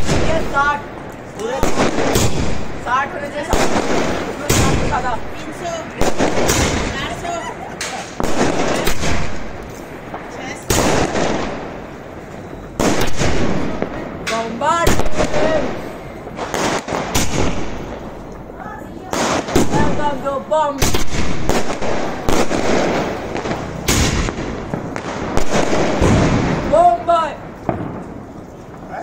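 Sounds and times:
fireworks bangs: 0.0s - 29.0s.

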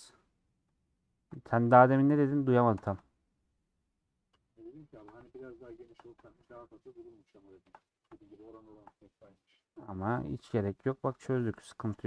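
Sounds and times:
man talking quietly: 4.6s - 9.7s.

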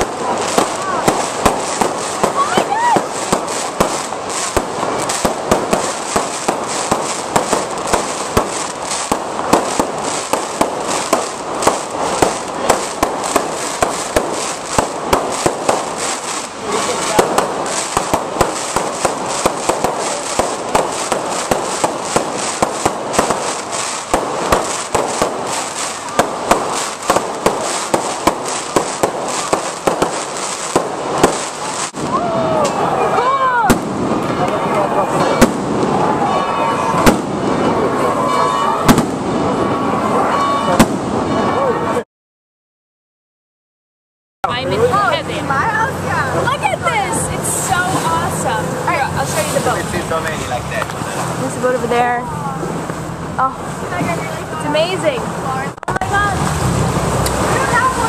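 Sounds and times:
fireworks bangs and crackles: 0.0s - 42.0s, 44.4s - 58.0s.

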